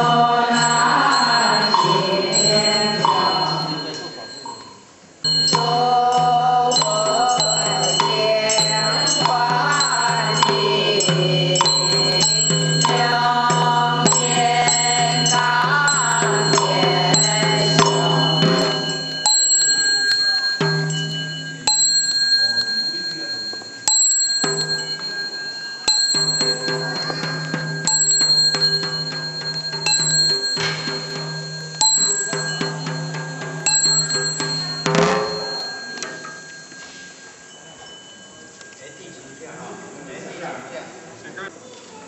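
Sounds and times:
group chanting: 0:00.0 - 0:04.2, 0:05.3 - 0:19.4
small bell ringing: 0:00.0 - 0:40.4.

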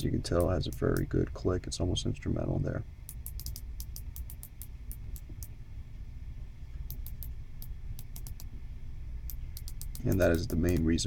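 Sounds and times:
watch bezel ratcheting clicks: 0:03.1 - 0:05.5, 0:08.0 - 0:08.5, 0:09.3 - 0:10.9.

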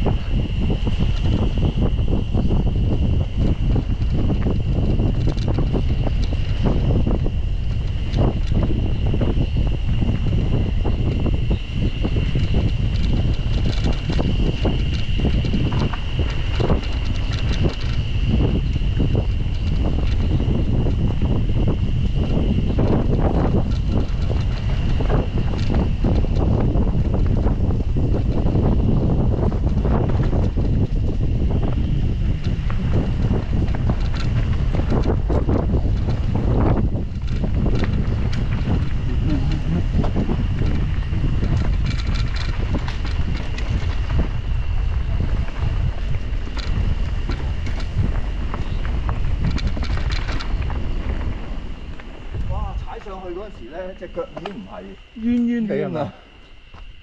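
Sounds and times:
bike clattering over bumps: 0:00.0 - 0:54.8
wind rushing over microphone: 0:00.0 - 0:57.0.

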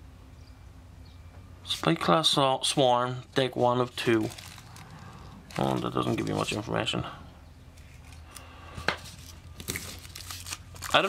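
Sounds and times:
plastic crinkling: 0:03.3 - 0:06.8, 0:07.8 - 0:11.0
knife slitting plastic wrap: 0:09.0 - 0:11.0.

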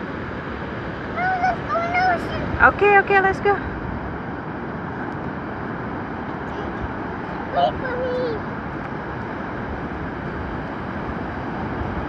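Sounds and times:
ocean surf breaking on beach: 0:00.0 - 0:12.0
wind: 0:00.0 - 0:12.0.

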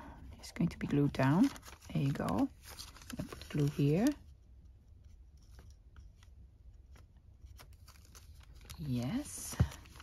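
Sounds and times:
paper rustling: 0:00.8 - 0:04.3, 0:05.0 - 0:10.0.

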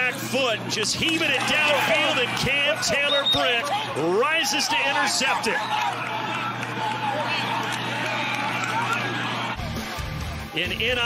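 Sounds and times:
players shouting and chattering: 0:00.0 - 0:11.0.

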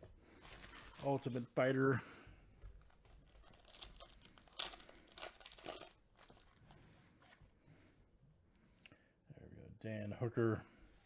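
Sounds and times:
foil wrapper crinkling and tearing: 0:00.4 - 0:01.5, 0:02.8 - 0:06.6.

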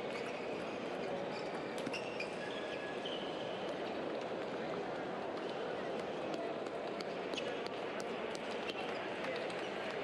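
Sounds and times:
babble of many voices: 0:00.0 - 0:10.0.

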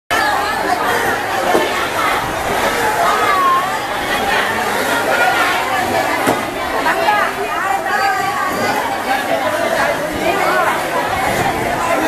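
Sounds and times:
crowd chattering: 0:00.1 - 0:12.0.

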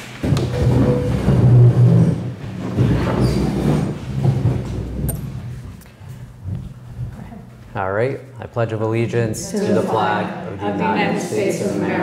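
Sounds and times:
chairs scraping and knocking: 0:00.2 - 0:05.8.

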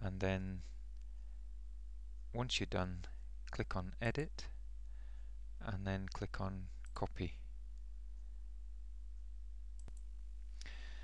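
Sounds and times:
low electrical hum: 0:00.0 - 0:11.0
computer mouse click: 0:09.8 - 0:10.1.

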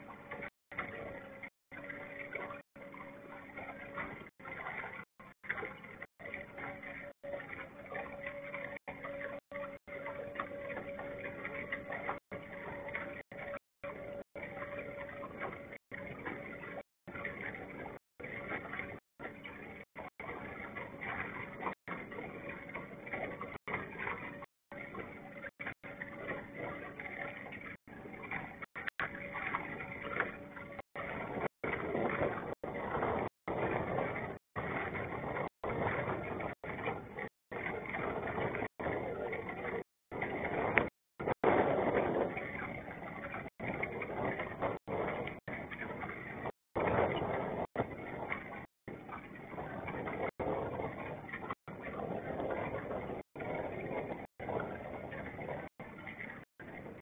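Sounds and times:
faint steady tone: 0:00.0 - 0:57.0
small boat motoring: 0:00.0 - 0:57.0.

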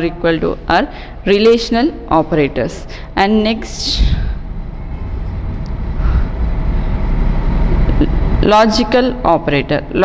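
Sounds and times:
steady low rumble: 0:02.5 - 0:10.0.

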